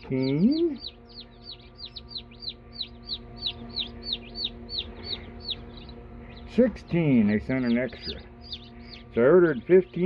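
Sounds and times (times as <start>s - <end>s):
chicks peeping: 0.0s - 10.0s
faint low hum: 0.0s - 10.0s.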